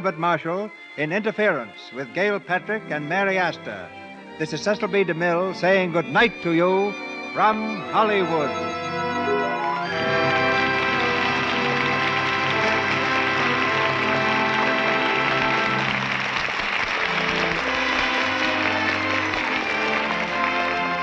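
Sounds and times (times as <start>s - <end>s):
orchestra playing closing music: 1.1s - 21.0s
audience applauding: 7.4s - 21.0s.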